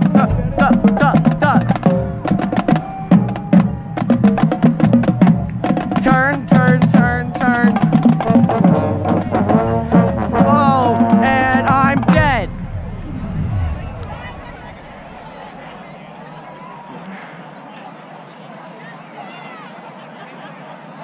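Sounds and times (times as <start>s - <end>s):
rapid drum hits: 0.0s - 9.6s, 10.2s - 15.3s
marching band playing: 0.0s - 16.1s.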